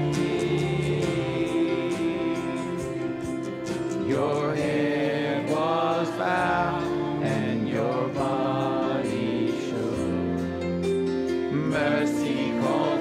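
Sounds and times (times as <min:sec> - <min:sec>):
man singing: 0:00.0 - 0:10.6, 0:11.5 - 0:13.0
worship band playing slow song: 0:00.0 - 0:13.0.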